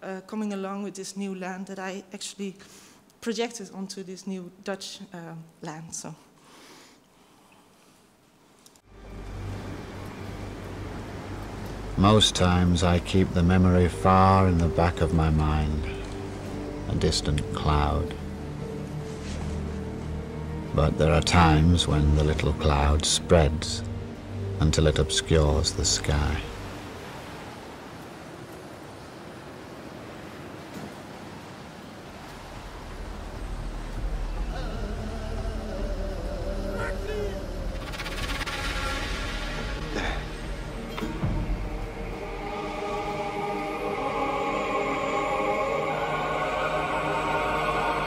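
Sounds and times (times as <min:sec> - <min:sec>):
wind: 0:08.4 - 0:48.0
sea waves washing: 0:08.9 - 0:48.0
boat engine rumbling: 0:32.4 - 0:43.9
hiss: 0:37.8 - 0:40.9.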